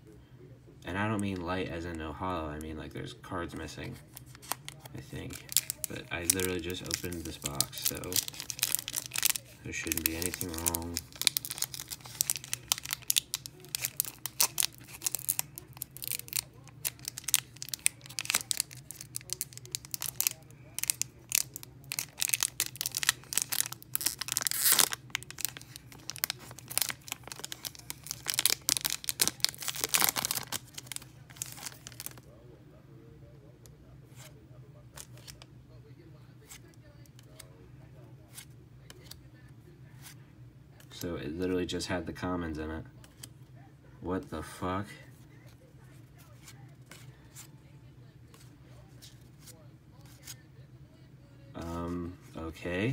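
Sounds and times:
foil wrapper crinkling and tearing: 0:04.0 - 0:32.3.

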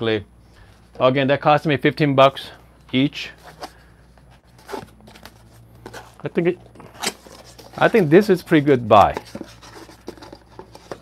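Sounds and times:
cardboard box scratching: 0:04.4 - 0:06.2, 0:07.0 - 0:11.0.

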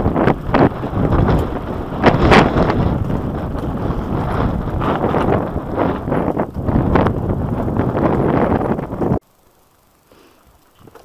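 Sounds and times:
bike rattling over bumps: 0:00.0 - 0:09.2
bike tyres rumbling on gravel: 0:00.0 - 0:09.2
wind on microphone: 0:00.0 - 0:09.2.

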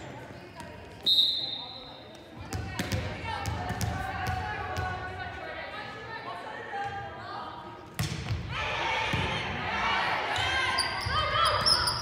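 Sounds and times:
low gym chatter: 0:00.0 - 0:12.0.

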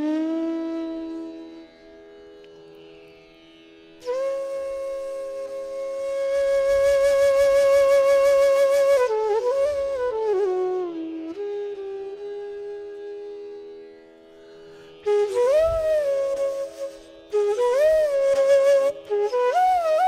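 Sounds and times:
bamboo flute melody: 0:00.0 - 0:02.1, 0:04.0 - 0:14.2, 0:15.0 - 0:20.0.

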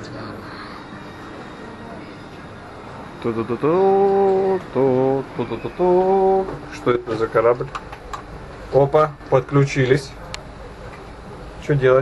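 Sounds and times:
hum of indistinct voices: 0:00.0 - 0:12.0.

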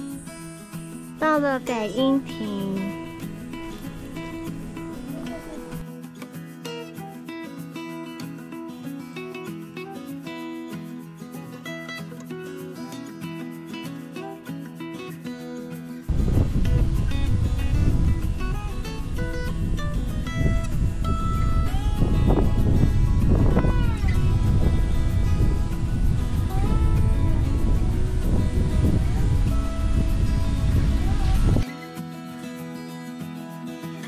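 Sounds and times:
guitar music: 0:00.0 - 0:34.0
wind buffeting microphone: 0:16.1 - 0:31.6.

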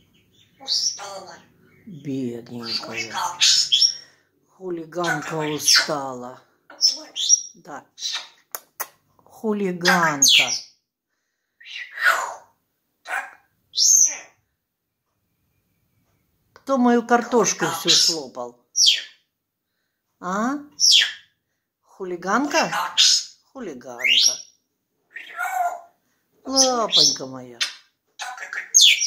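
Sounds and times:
parrot vocal sound: 0:00.1 - 0:01.9, 0:02.5 - 0:04.3, 0:04.9 - 0:09.0, 0:11.6 - 0:14.4, 0:20.7 - 0:21.3, 0:22.4 - 0:23.4, 0:24.0 - 0:29.0
parrot giving harsh calls: 0:00.6 - 0:01.5, 0:02.6 - 0:04.2, 0:11.6 - 0:14.4, 0:25.1 - 0:25.9, 0:26.6 - 0:29.0.

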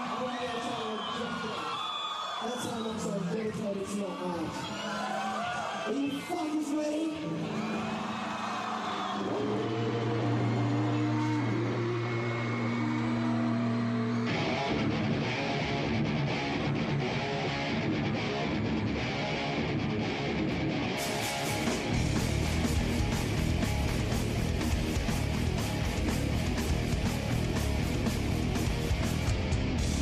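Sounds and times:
live rock band: 0:07.2 - 0:30.0
drums hitting hard: 0:21.0 - 0:30.0.

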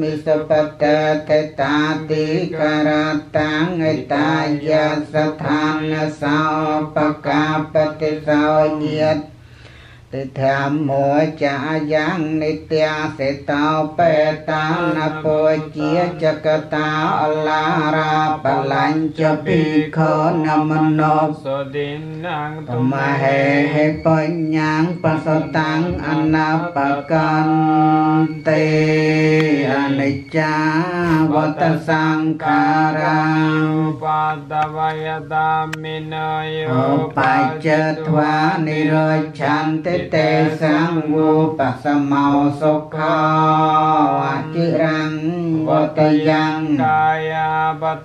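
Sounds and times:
monks chanting: 0:00.0 - 0:09.3, 0:10.4 - 0:48.0.

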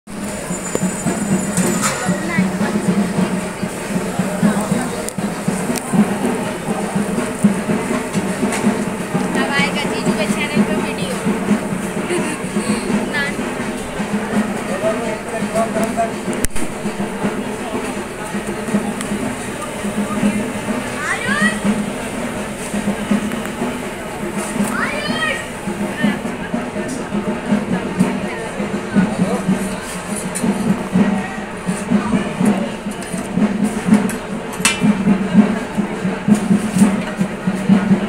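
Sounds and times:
indistinct crowd chatter: 0:00.0 - 0:38.0.

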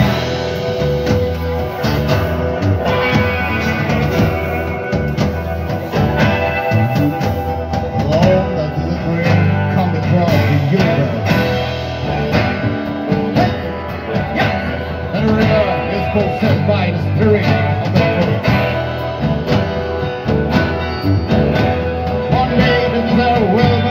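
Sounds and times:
acoustic guitar: 0:00.0 - 0:23.9
bass guitar: 0:00.0 - 0:23.9
electric guitar: 0:00.0 - 0:23.9
steady drum beat: 0:00.0 - 0:23.9.

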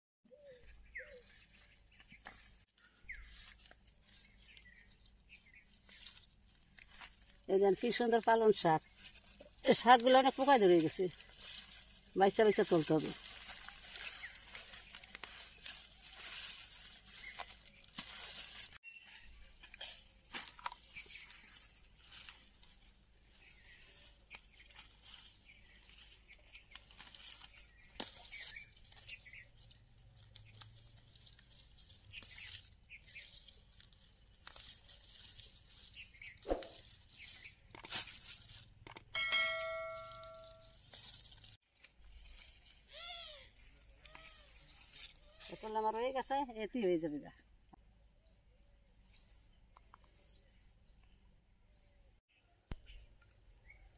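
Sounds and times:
leaves rustling by hand: 0:00.5 - 0:46.8
spinach leaves snapping: 0:05.7 - 0:18.8, 0:24.1 - 0:39.1.

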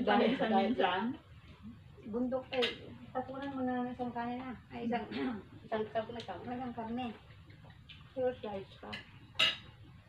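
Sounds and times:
tableware clinking: 0:08.8 - 0:09.8.

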